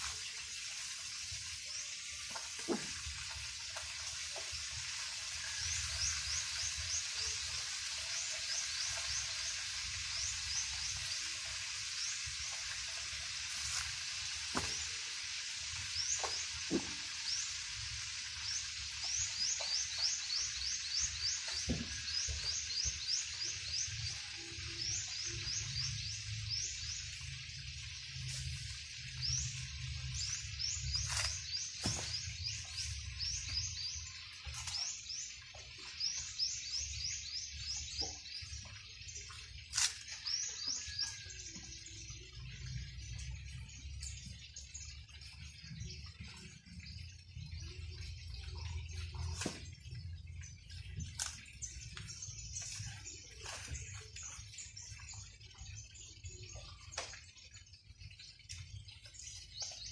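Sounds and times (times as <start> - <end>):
steady hiss: 0.0 - 35.4
coconut husks knocking: 14.5 - 15.0, 16.2 - 17.2, 21.4 - 22.6, 30.9 - 32.5.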